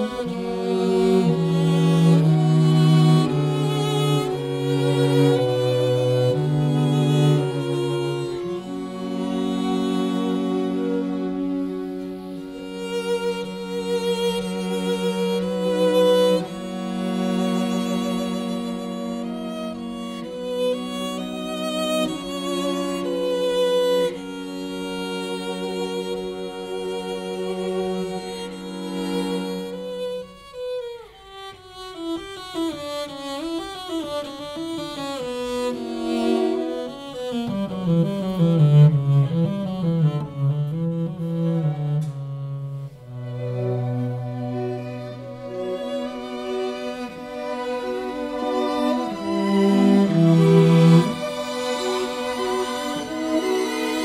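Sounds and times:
low cello line: 0.0 - 54.0
string ensemble playing slowly: 0.0 - 54.0
strings playing slow chords: 34.2 - 54.0.

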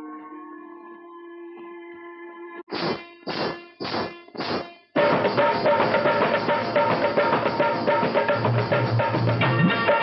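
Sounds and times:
metallic percussion clangs: 2.9 - 10.0.

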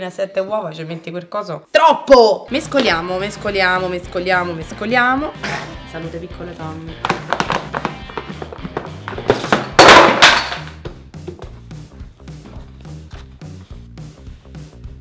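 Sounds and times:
background music with steady beat: 2.5 - 15.0
hands slapping plastic tray: 7.0 - 11.4.

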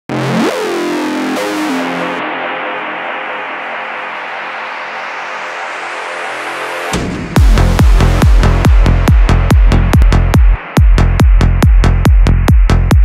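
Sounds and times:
sustained synthesizer chords: 0.1 - 12.9.

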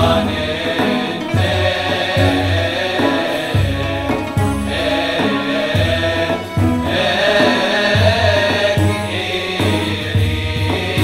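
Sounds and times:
men's choir chanting in unison: 0.0 - 11.0.

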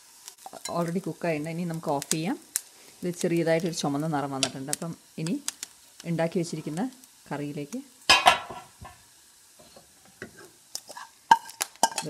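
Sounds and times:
pan sizzling with crackles: 0.0 - 12.0
woman talking: 0.7 - 2.4, 3.0 - 5.4, 6.0 - 7.9.

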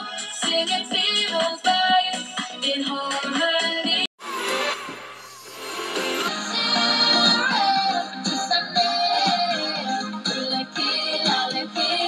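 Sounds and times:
pop backing track: 0.0 - 4.1, 5.9 - 12.0
girl singing: 6.4 - 12.0.

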